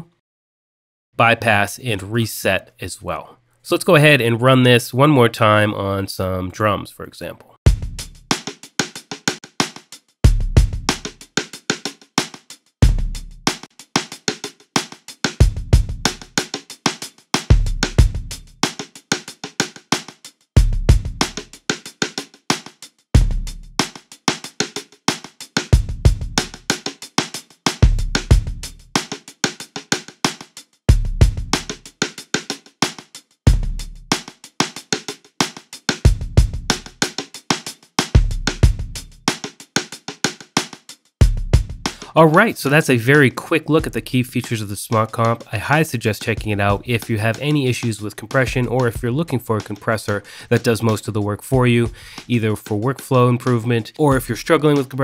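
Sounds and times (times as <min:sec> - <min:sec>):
deep kick drum hits: 0:07.7 - 0:08.0, 0:10.3 - 0:10.9, 0:12.8 - 0:13.2, 0:23.2 - 0:23.5, 0:27.8 - 0:28.6, 0:30.9 - 0:31.6, 0:33.5 - 0:33.8, 0:41.2 - 0:41.8
fast snare and hi-hat hits: 0:07.7 - 0:55.0.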